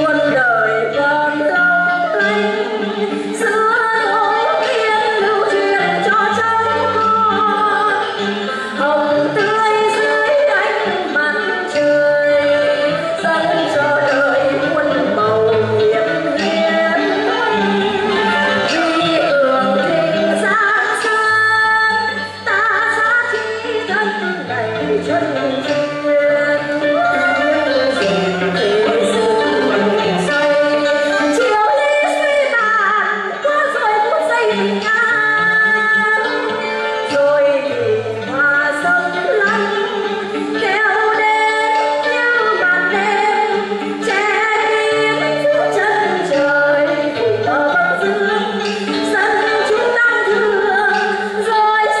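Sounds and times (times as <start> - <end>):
instrumental accompaniment: 0.0 - 52.0
woman singing opera melody: 0.0 - 52.0.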